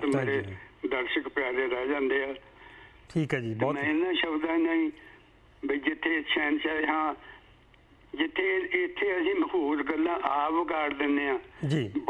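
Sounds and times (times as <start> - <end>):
man talking over call line: 0.0 - 0.6, 3.1 - 4.2, 9.8 - 12.0.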